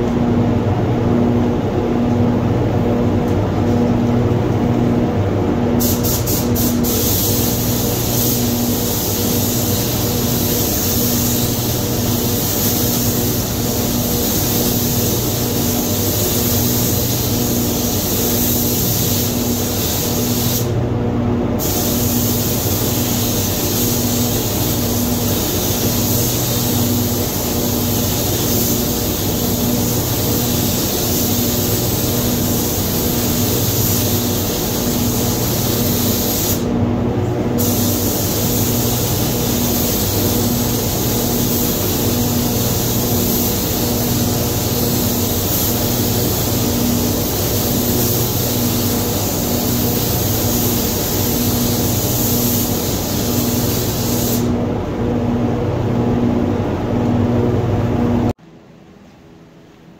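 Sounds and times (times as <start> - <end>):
paint booth airflow hum: 0.0 - 59.9
spray gun hissing: 5.8 - 20.8, 21.6 - 36.7, 37.6 - 54.6.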